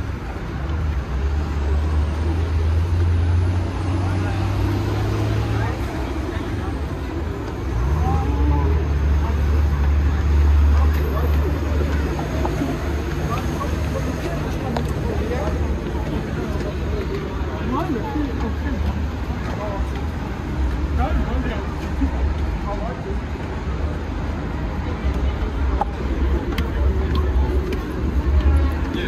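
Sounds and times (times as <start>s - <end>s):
road traffic drone: 0.0s - 29.0s
people chatting: 0.2s - 29.0s.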